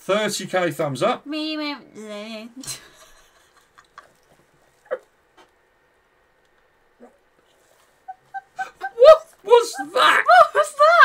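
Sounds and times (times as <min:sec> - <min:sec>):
hushed laughter: 0:08.0 - 0:09.2.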